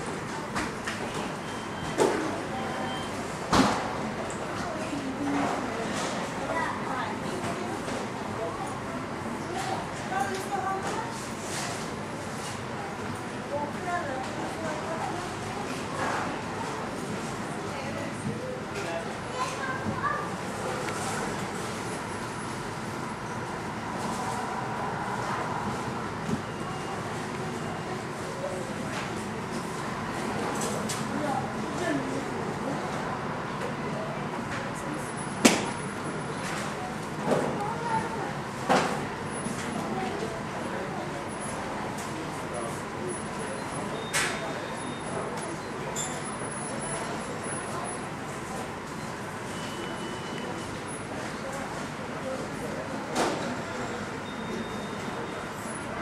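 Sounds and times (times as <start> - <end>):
airport apron noise: 0.0 - 56.0.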